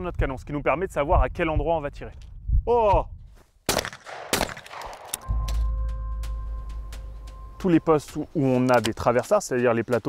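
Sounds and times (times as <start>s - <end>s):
shotgun shots with echo: 3.7s - 5.3s
background music with deep drone: 5.2s - 8.0s.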